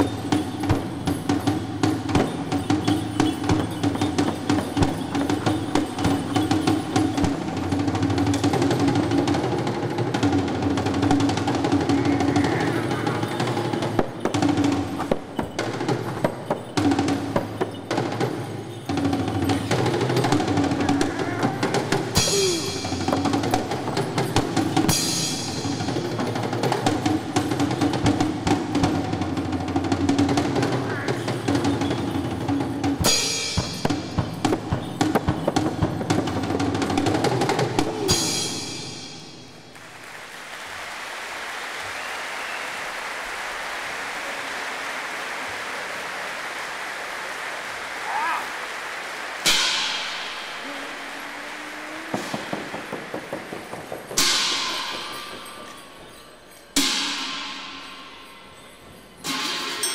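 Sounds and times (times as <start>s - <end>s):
frame drum struck with beater: 32.8s - 39.8s, 49.4s - 51.2s, 52.0s - 56.2s.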